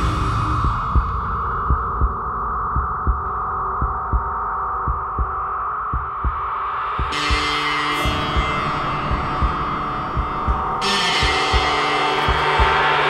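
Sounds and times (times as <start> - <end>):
heartbeat-like double thump: 0.0 - 7.5, 8.4 - 11.7
sustained drone: 0.0 - 13.0.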